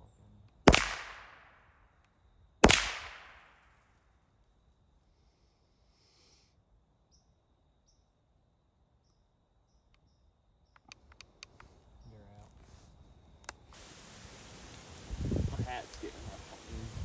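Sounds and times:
sharp clicks: 10.7 - 11.7.

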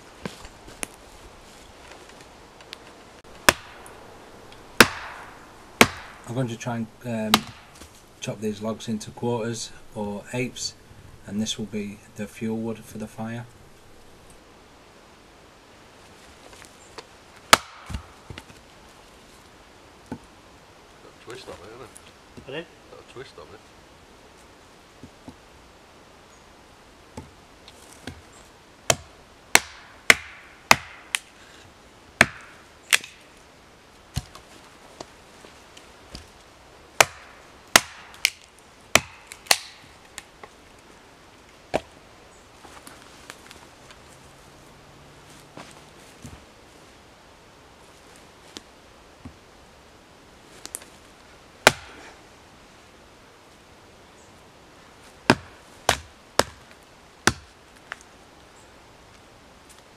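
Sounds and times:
hatchet splitting logs: 3.4 - 6.4, 7.2 - 8.0, 17.0 - 18.6, 28.0 - 28.3, 28.9 - 31.3, 32.2 - 33.2, 34.1 - 34.5, 37.0 - 40.5, 41.7 - 42.0, 51.6 - 52.1, 55.2 - 57.9.

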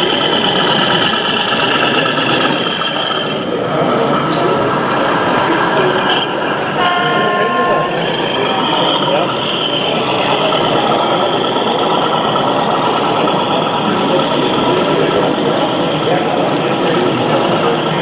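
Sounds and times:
crowd chatter: 0.0 - 18.0
model train horn toot: 6.0 - 9.9.

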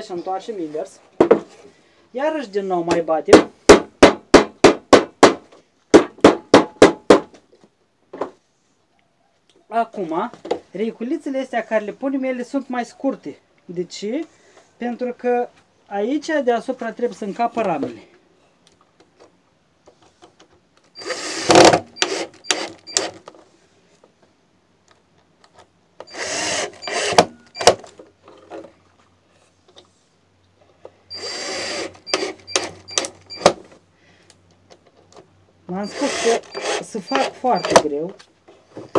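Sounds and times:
cordless drill driving a screw: 21.0 - 23.2, 26.0 - 27.8, 31.1 - 33.6, 35.8 - 37.8.

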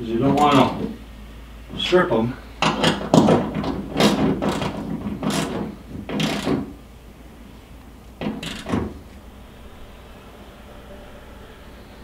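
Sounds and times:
hand ratchet clicking: 2.6 - 6.8, 8.2 - 8.8.

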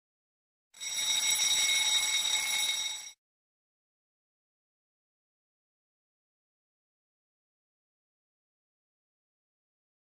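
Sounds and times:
timer alarm ringing: 0.8 - 3.2.

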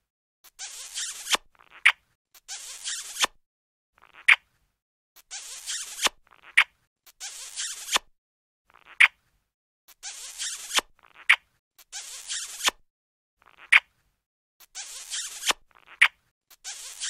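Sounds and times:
cartoon kissing smack: 1.1 - 2.0, 3.0 - 3.4, 5.8 - 6.7, 7.8 - 8.1, 10.5 - 11.4, 12.4 - 12.8, 15.2 - 16.2.

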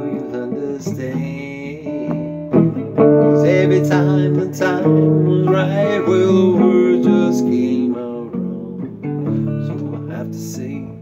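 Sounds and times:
acoustic guitar strummed: 0.0 - 11.0.

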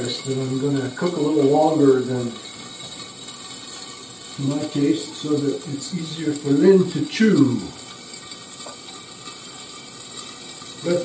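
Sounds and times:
frying sizzle with crackles: 0.0 - 11.0.

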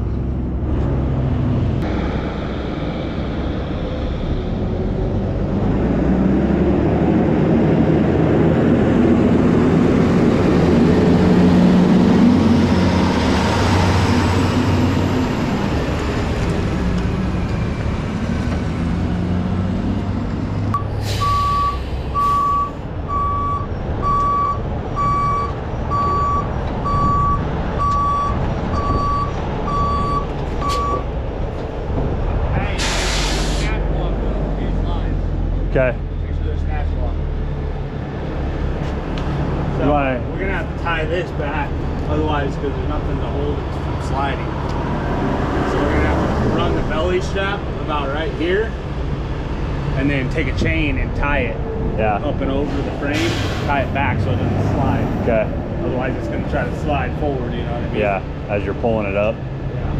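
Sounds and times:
reversing beeper: 20.7 - 31.0
air hisses: 32.8 - 33.8.

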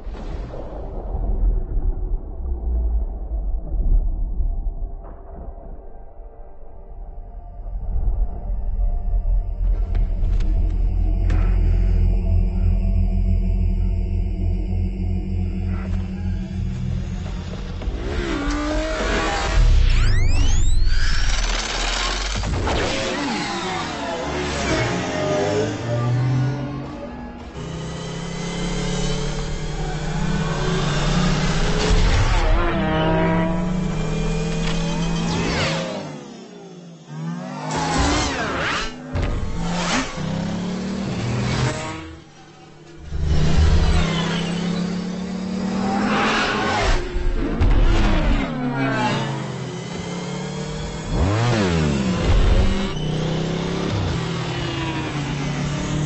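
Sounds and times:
rush of noise: 0.0 - 36.3
low film score: 0.0 - 56.0
synthetic engine whine: 6.8 - 56.0.

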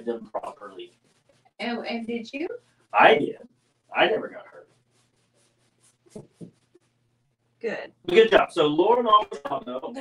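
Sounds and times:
paint strokes on canvas: 0.0 - 7.1.

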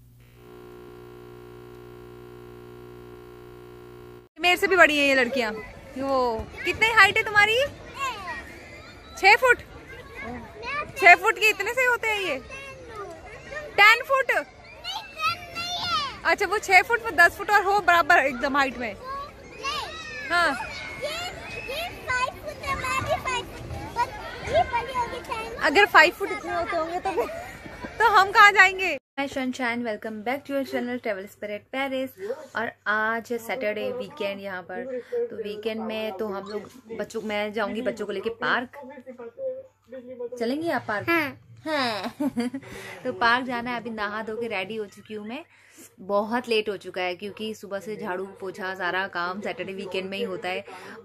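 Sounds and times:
electronic drone of held tones: 0.0 - 4.3
low steady hum: 0.0 - 4.3
children calling out and chattering: 5.0 - 28.8.

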